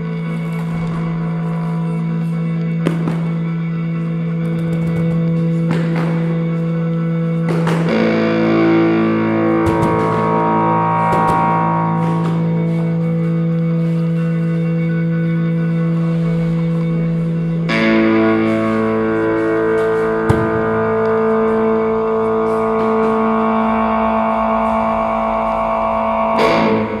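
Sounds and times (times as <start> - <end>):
sustained guitar chords: 0.0 - 27.0.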